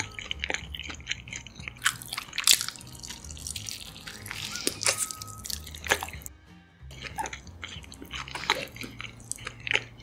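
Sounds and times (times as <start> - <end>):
wet chewing mouth sounds: 0.0 - 6.3, 6.9 - 10.0.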